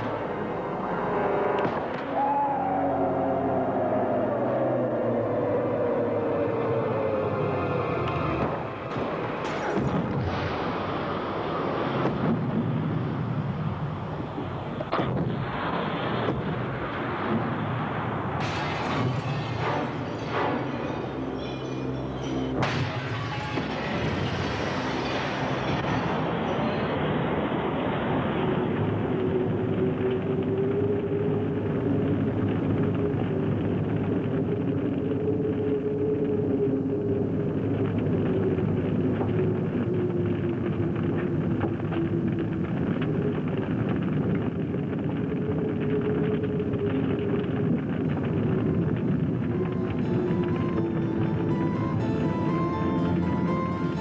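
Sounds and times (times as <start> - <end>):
car burning: 4.5 - 54.0
car explosion blast: 8.4 - 21.0, 22.6 - 30.4
music with long held notes: 49.5 - 54.0.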